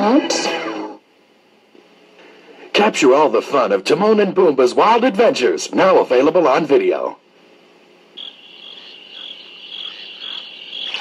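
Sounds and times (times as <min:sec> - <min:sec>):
crickets chirping: 0:08.2 - 0:11.0.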